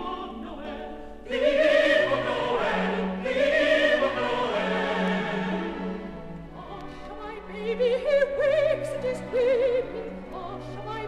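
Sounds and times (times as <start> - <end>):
choir singing a carol: 0.0 - 11.0
orchestral accompaniment: 0.0 - 11.0.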